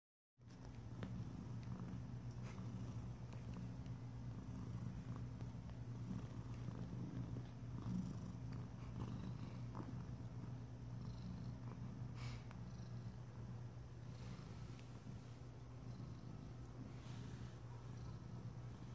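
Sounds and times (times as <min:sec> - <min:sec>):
cat purring: 0:00.5 - 0:18.9.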